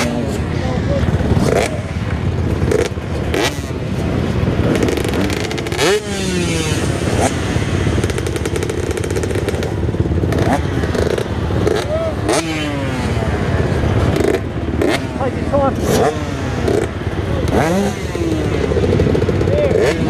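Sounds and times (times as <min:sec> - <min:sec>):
motocross bike engines revving: 0:00.0 - 0:20.0.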